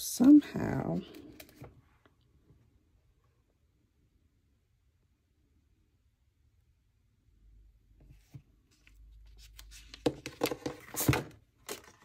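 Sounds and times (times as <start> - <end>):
paper pages rustling: 8.1 - 12.0.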